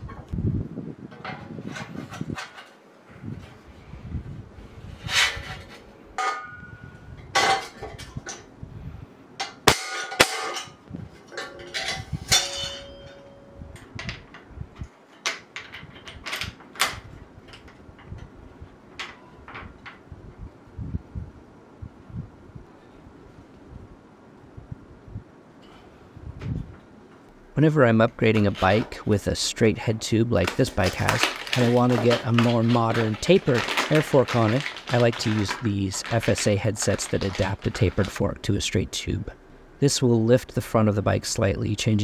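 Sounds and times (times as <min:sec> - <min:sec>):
knocks and clanks of metal frame: 0:01.1 - 0:02.8, 0:09.4 - 0:18.3
tape rustling and ripping: 0:30.4 - 0:38.3.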